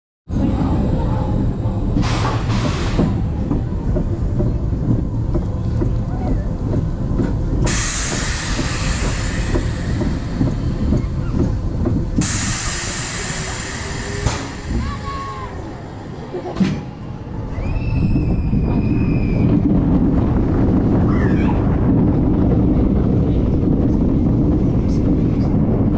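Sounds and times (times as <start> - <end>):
roller coaster rumbling on track: 0.3 - 25.9
wind buffeting microphone: 0.3 - 25.9
rushing hiss: 12.2 - 15.4.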